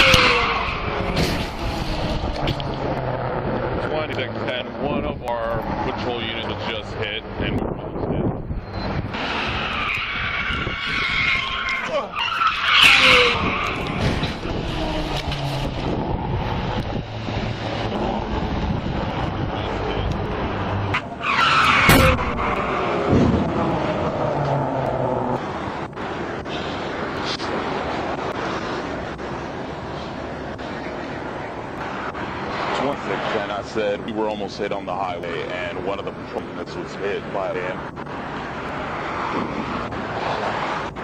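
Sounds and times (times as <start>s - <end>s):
car crash: 0.0s - 2.6s, 9.2s - 16.0s, 20.9s - 25.1s
car tyres skidding and squealing: 0.0s - 7.2s, 8.5s - 41.0s
highway traffic noise: 0.0s - 41.0s.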